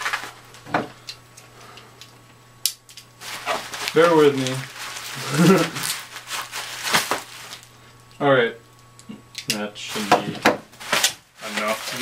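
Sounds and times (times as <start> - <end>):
bubble wrap crinkling: 0.0 - 0.7, 2.8 - 8.1, 9.8 - 12.0.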